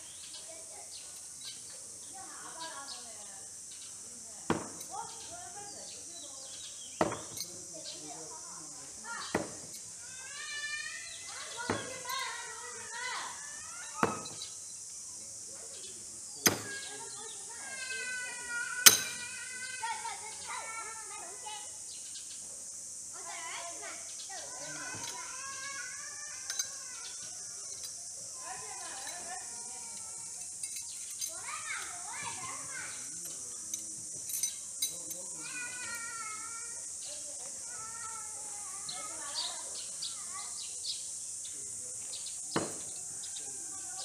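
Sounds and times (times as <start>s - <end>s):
steady high-pitched hiss: 0.0s - 44.0s
knife thunking into wood: 4.5s - 4.9s, 7.0s - 7.5s, 14.0s - 14.5s, 16.4s - 16.8s, 42.6s - 42.9s
children's voices: 8.9s - 14.4s, 16.6s - 21.8s, 23.1s - 27.8s, 31.2s - 33.2s, 35.4s - 40.9s, 43.4s - 44.0s.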